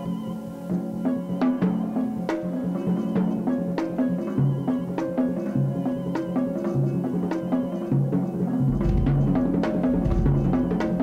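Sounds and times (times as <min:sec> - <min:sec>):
toms struck with sticks: 0:02.4 - 0:11.0.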